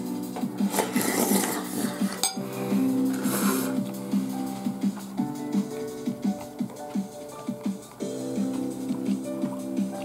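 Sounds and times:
background music: 0.0s - 10.0s
person slurping and chewing: 0.7s - 2.3s, 3.0s - 3.9s.

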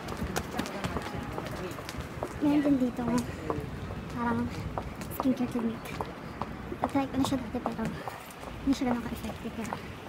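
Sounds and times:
footsteps on stone pavement: 0.0s - 10.0s
shoe heels clicking: 0.0s - 10.0s.

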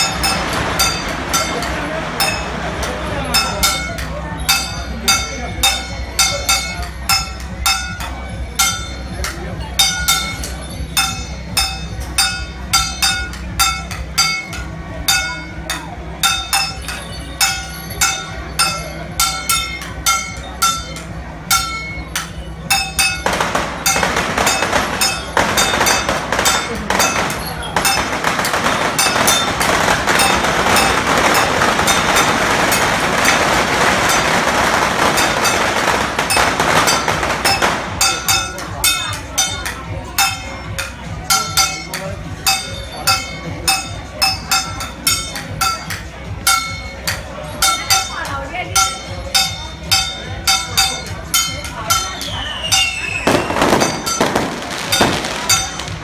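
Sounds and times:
loud rushing noise: 0.0s - 3.2s
metal percussion ringing hits: 0.0s - 56.0s.

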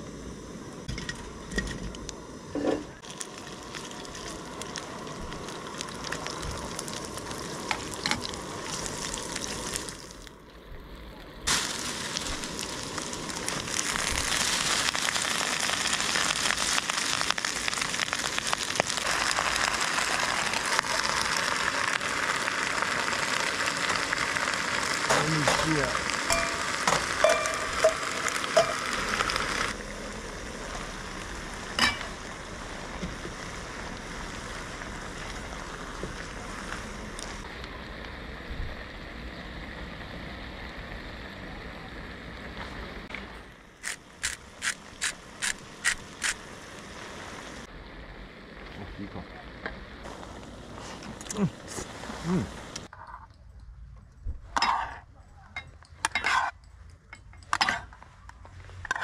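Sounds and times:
food sizzling in a wok: 2.2s - 10.3s, 11.5s - 43.1s, 43.8s - 48.6s, 49.5s - 52.9s, 56.1s - 56.6s
utensils clinking against pan: 26.3s - 28.8s.

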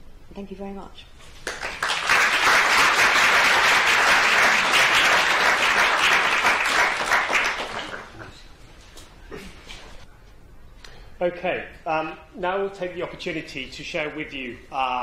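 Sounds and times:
audience applauding: 1.4s - 8.3s.

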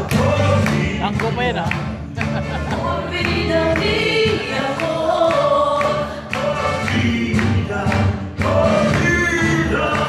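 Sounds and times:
group singing in chorus: 0.0s - 1.2s, 2.4s - 10.0s
music with sharp beat: 0.0s - 10.0s.

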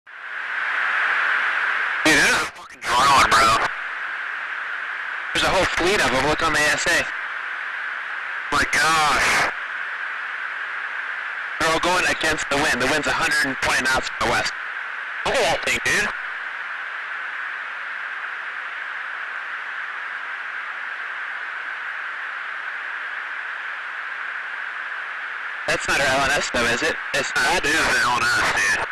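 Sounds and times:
radio intercom hiss: 0.1s - 28.9s
voice over radio: 2.0s - 3.9s, 5.4s - 7.2s, 8.5s - 9.6s, 11.6s - 14.6s, 15.2s - 16.3s, 25.7s - 28.9s.

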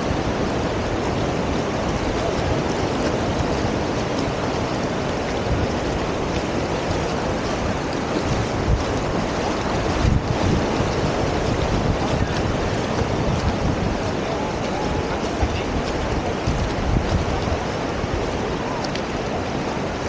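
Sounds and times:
waves breaking on beach: 0.0s - 20.0s
wind buffeting microphone: 0.0s - 20.0s.

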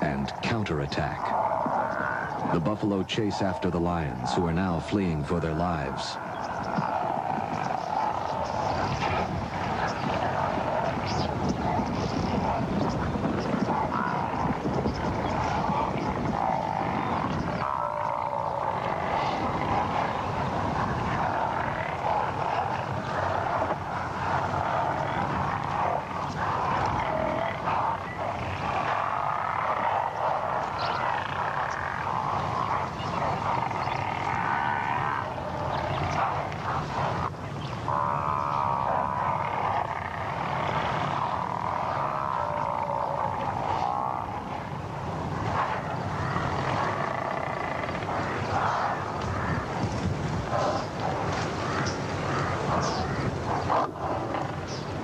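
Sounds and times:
buffalo herd grunting and calling: 0.0s - 55.0s.

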